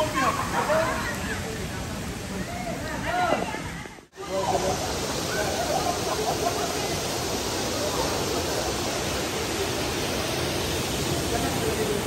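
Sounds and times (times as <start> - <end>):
waterfall pouring into pool: 0.0 - 12.0.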